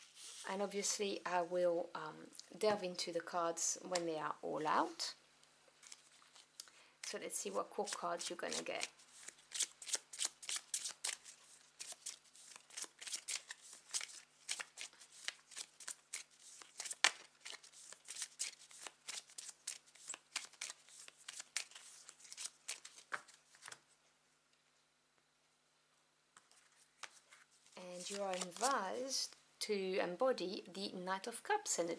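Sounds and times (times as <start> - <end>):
cards being shuffled: 5.8 - 23.8, 26.4 - 29.4.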